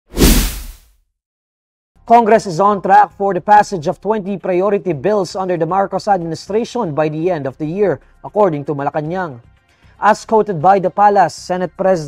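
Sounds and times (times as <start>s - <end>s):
whoosh with deep boom: 0.1s - 0.8s.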